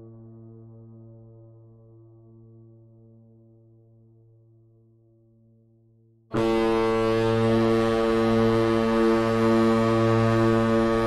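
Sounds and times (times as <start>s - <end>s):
stadium horn long deep blast: 6.3s - 11.0s.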